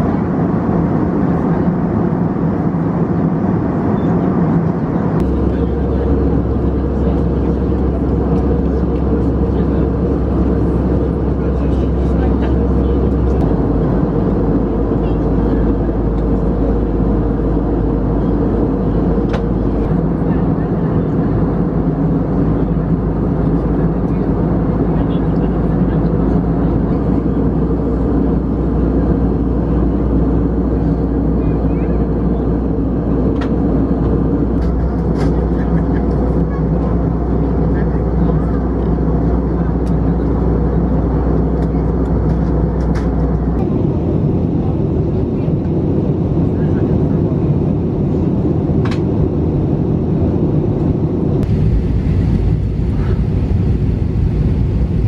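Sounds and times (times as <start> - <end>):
airliner cabin drone: 0.0 - 55.0.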